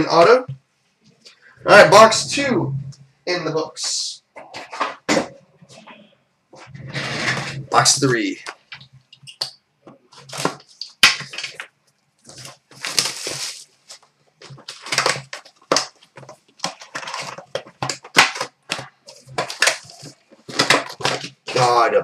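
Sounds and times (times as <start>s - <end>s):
foil packs rustling: 10.1s - 21.9s.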